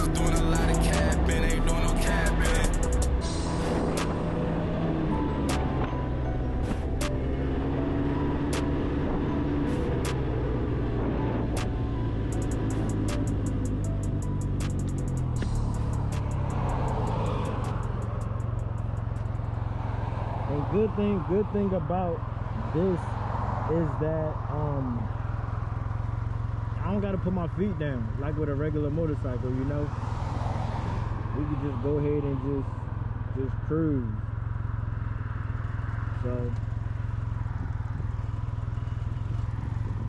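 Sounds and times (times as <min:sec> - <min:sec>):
music with beat and singing: 0:00.0 - 0:04.4, 0:11.6 - 0:18.4
motorcycle engine running: 0:07.1 - 0:23.5, 0:24.1 - 0:30.1, 0:31.1 - 0:40.0.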